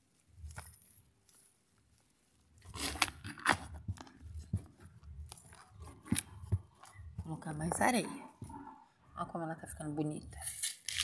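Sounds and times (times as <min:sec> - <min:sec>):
hands scraping soil in plastic pot: 0:02.6 - 0:07.9.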